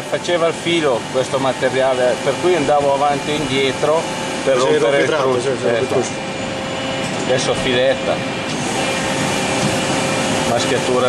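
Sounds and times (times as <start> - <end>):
lathe mechanical hum: 0.0 - 11.0.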